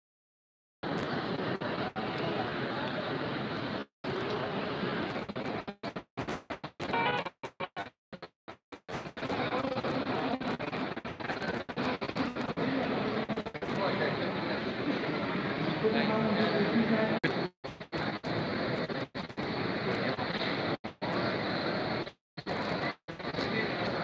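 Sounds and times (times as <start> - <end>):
murmur of voices: 11.8 - 17.5.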